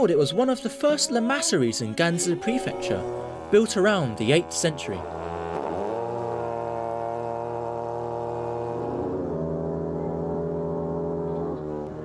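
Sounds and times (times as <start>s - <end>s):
long horns droning: 0.0s - 12.0s.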